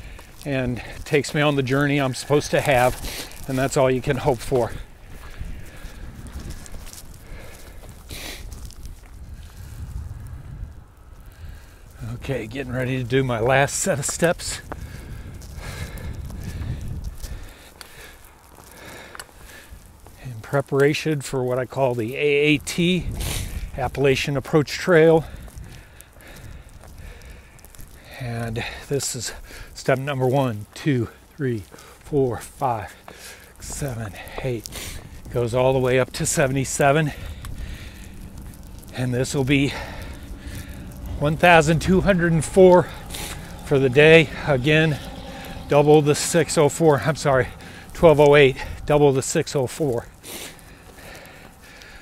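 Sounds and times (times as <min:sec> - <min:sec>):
footsteps on loose rock: 0:00.0 - 0:09.9, 0:31.7 - 0:43.4
low microphone rumble: 0:00.0 - 0:17.6, 0:32.4 - 0:52.0
faint clicks: 0:14.1 - 0:20.2.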